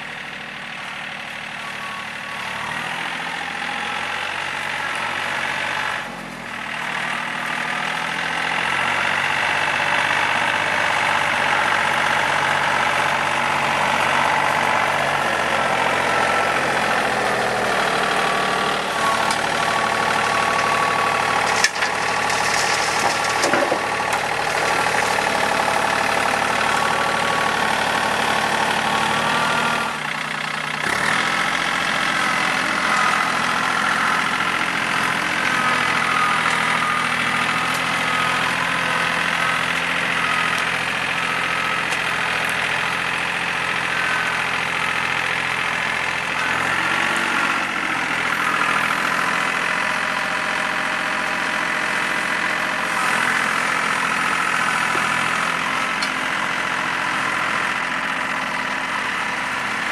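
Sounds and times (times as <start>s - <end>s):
tractor diesel engine running: 0.0s - 59.9s.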